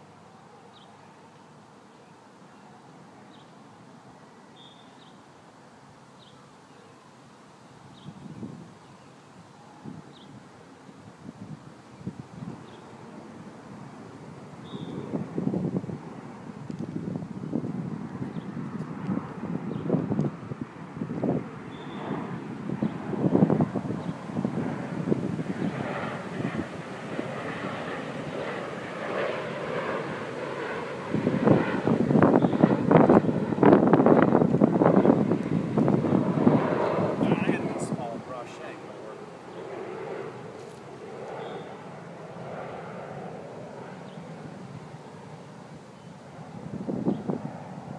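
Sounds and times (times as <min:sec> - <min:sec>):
wind buffeting microphone: 0:07.9 - 0:08.8, 0:09.8 - 0:44.9, 0:46.3 - 0:47.9.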